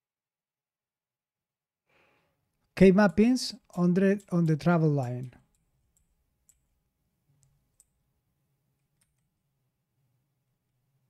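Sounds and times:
computer keys clicking: 0:03.0 - 0:06.8, 0:07.4 - 0:08.0, 0:08.8 - 0:09.4.

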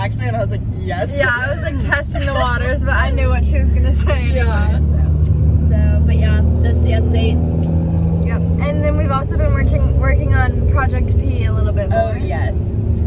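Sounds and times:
car engine and road noise: 0:00.0 - 0:13.0.

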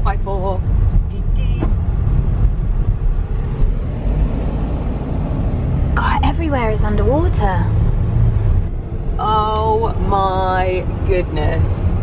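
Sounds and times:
engine and tyres rumbling: 0:00.0 - 0:12.0.

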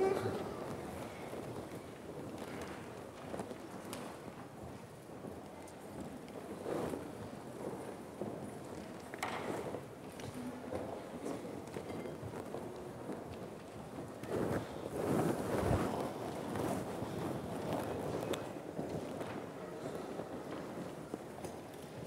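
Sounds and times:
audience shuffling and rustling: 0:00.0 - 0:22.0.

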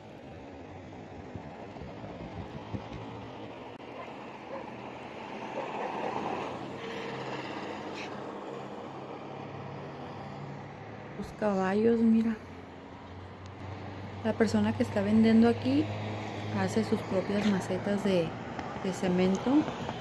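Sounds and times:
traffic noise with low hum: 0:00.0 - 0:20.0
vehicle passing: 0:00.0 - 0:20.0.

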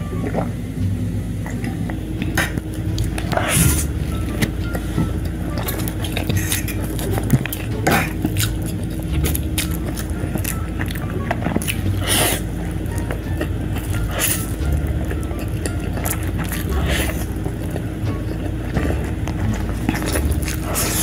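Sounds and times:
background music: 0:00.0 - 0:21.0
noodles slurped and chewed: 0:02.2 - 0:21.0.

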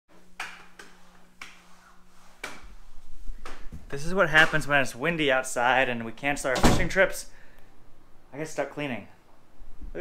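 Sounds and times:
faint steady hum: 0:00.1 - 0:10.0.

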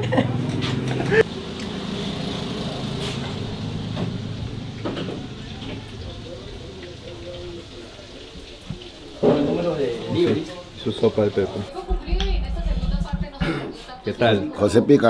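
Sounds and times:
faint voices: 0:05.0 - 0:14.0
low steady rumble: 0:11.9 - 0:13.5.

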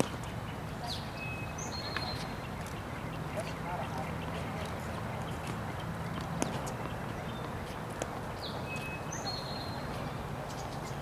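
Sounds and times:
tennis ball bouncing on court: 0:00.0 - 0:00.3, 0:04.6 - 0:08.9
outdoor background noise: 0:00.0 - 0:11.0.

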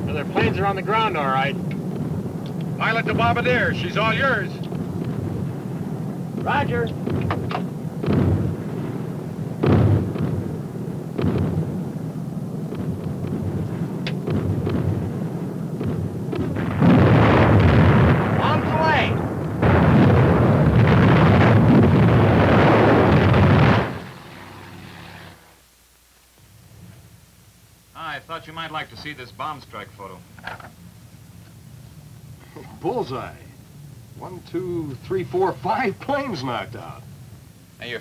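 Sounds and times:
bomb explosions: 0:00.0 - 0:24.8
loud bangs: 0:00.0 - 0:25.1
aircraft engine drone: 0:00.0 - 0:25.6.

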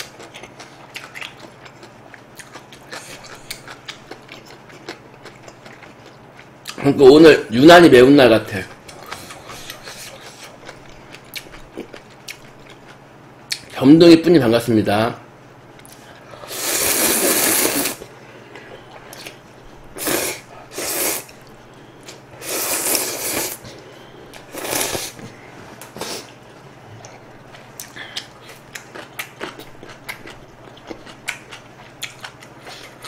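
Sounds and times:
person slurping noodles: 0:16.4 - 0:18.0, 0:20.0 - 0:21.3, 0:22.4 - 0:23.6, 0:24.5 - 0:25.2.

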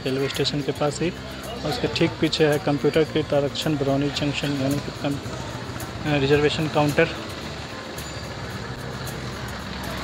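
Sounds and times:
auto-rickshaw engine running: 0:00.0 - 0:10.0
street traffic: 0:00.0 - 0:10.0.

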